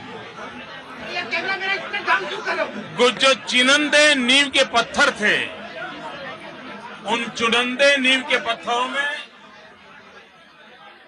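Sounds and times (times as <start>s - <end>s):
murmur of crowd chatter: 0.0s - 11.0s.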